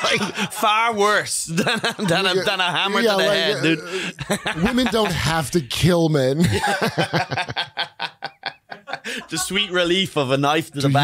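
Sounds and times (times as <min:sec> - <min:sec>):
man laughing breathily: 0:00.0 - 0:00.6, 0:03.6 - 0:04.6, 0:06.4 - 0:09.5.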